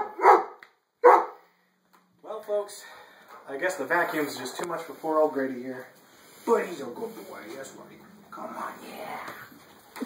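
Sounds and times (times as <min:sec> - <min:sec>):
dog barking: 0:00.0 - 0:01.4.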